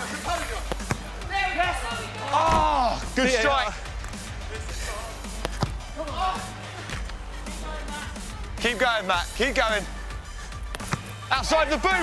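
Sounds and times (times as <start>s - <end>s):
background music: 0.0s - 12.0s
football being kicked: 0.7s - 1.1s, 5.4s - 5.8s, 10.7s - 11.1s.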